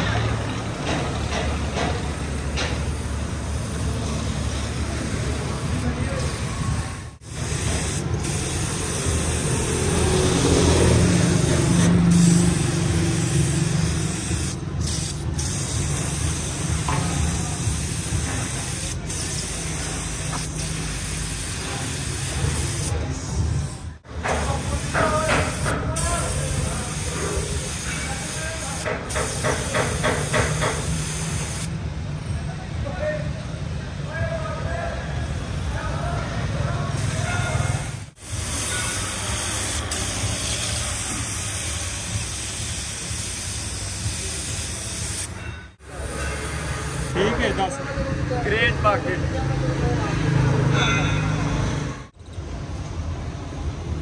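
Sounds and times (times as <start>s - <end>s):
paint spray gun hissing: 2.2s - 22.9s, 24.3s - 31.7s, 37.0s - 45.4s, 46.6s - 47.4s.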